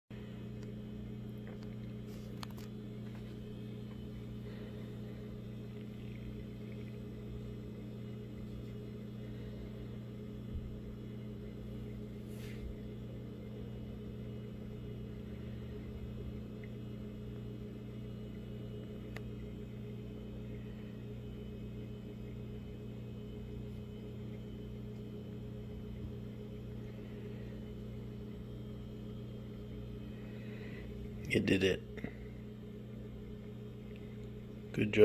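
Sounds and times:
low machine hum: 0:00.1 - 0:35.0.

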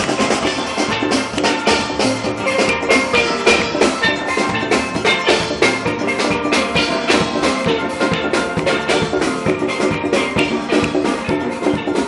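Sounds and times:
drum kit keeping beat: 0:00.0 - 0:12.0
steelpans playing: 0:00.0 - 0:12.0.

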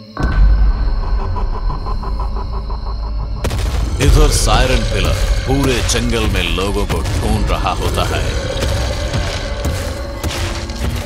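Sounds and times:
deep rumbling with fluttering pulse: 0:00.2 - 0:11.0.

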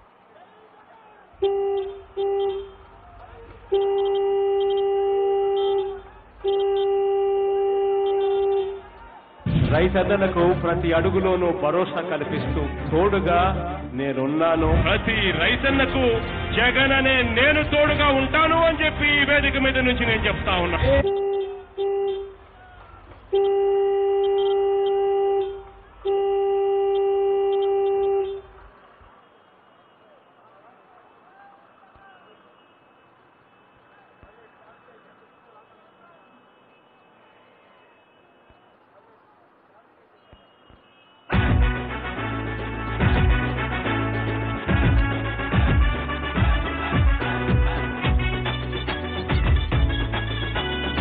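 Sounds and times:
vehicle horn honking: 0:01.3 - 0:09.0, 0:20.8 - 0:22.5, 0:23.3 - 0:28.6, 0:31.1 - 0:38.8, 0:40.2 - 0:51.0.

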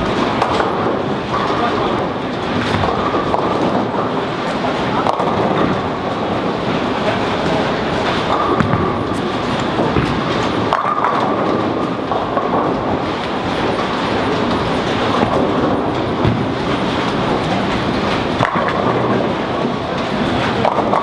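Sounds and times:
bowling balls rolling: 0:00.0 - 0:21.0
bowling pins clattering: 0:00.0 - 0:21.0.

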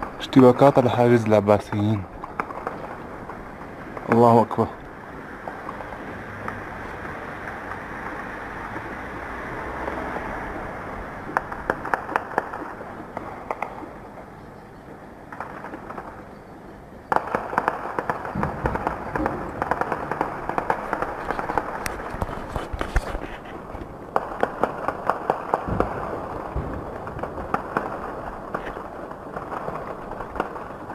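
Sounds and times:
rushing background noise: 0:00.0 - 0:30.9
gunshots: 0:17.1 - 0:22.1.

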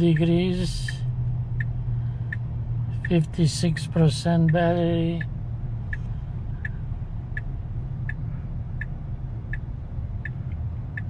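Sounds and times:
low cabin hum: 0:00.0 - 0:11.0.

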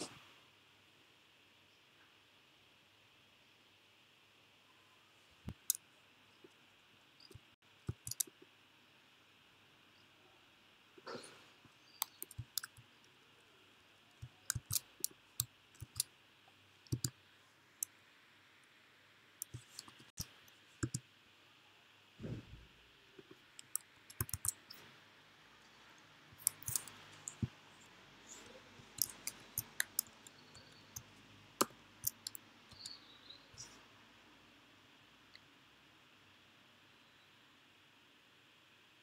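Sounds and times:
keyboard typing clicks: 0:07.2 - 0:08.3, 0:14.2 - 0:15.1, 0:16.9 - 0:17.2, 0:19.4 - 0:21.0, 0:23.6 - 0:24.8.

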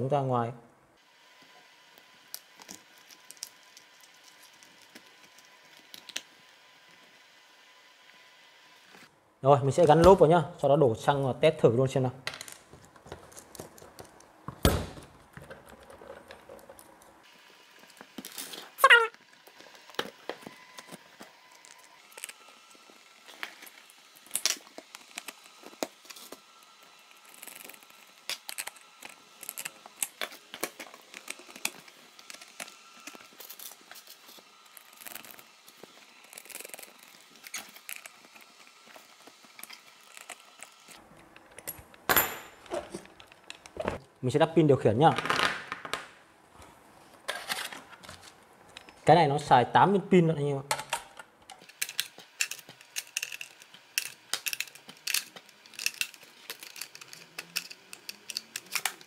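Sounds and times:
plastic and metal parts clicking: 0:50.7 - 0:59.0.

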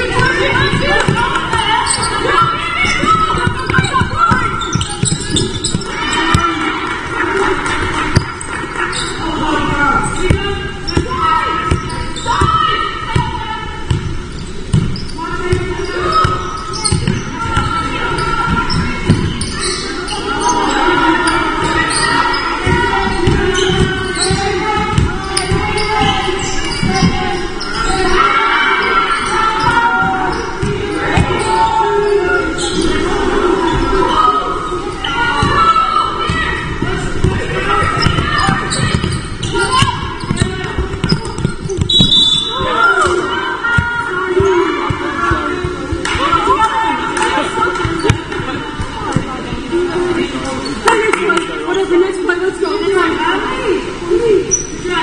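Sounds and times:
players calling out: 0:00.0 - 0:55.0
basketball bouncing on wooden floor: 0:37.2 - 0:39.2.

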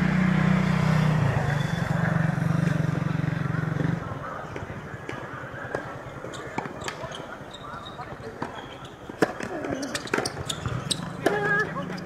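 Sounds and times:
tennis ball bouncing on court: 0:04.5 - 0:07.1, 0:08.3 - 0:12.0.

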